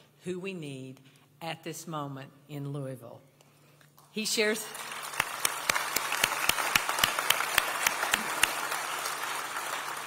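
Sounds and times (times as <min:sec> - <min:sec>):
audience applauding: 0:04.7 - 0:10.0
sharp nearby hand claps: 0:05.2 - 0:09.7.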